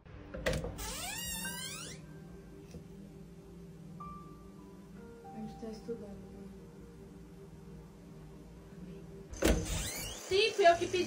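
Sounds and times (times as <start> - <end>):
door creaking open: 0.3 - 2.1, 9.3 - 10.3.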